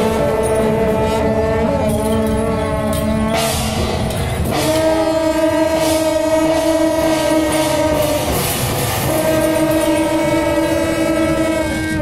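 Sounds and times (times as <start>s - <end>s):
brass horns blasting: 0.0s - 12.0s
drums and percussion: 0.0s - 12.0s.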